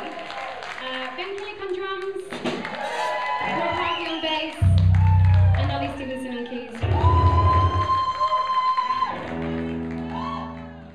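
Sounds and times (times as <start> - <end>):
live band playing: 2.4 - 8.1
deep bass note: 4.6 - 6.1.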